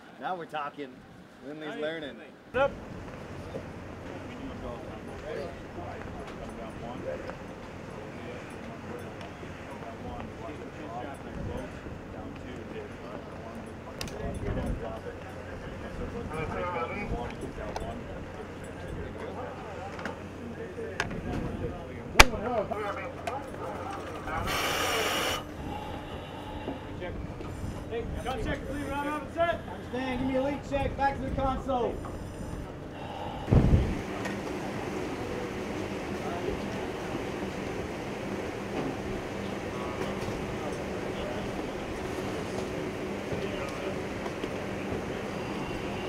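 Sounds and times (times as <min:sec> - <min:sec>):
ship machinery hum: 0:02.6 - 0:20.9, 0:21.5 - 0:46.0
air hiss: 0:24.4 - 0:26.7.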